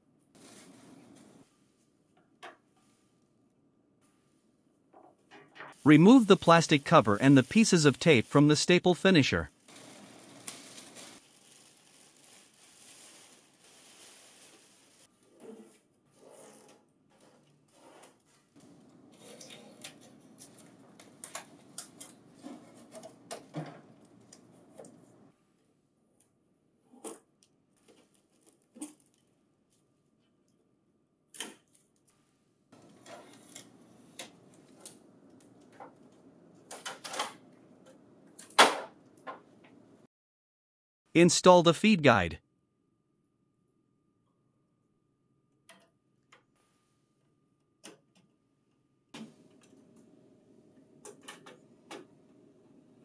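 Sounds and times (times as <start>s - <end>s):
plastic wrapping rustling: 0.4s - 1.4s, 9.5s - 15.1s.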